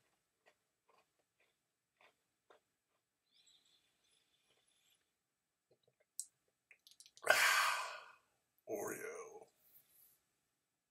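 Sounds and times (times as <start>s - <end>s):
man's mouth clicks: 6.2s - 7.4s
man sighing loudly: 7.2s - 8.2s.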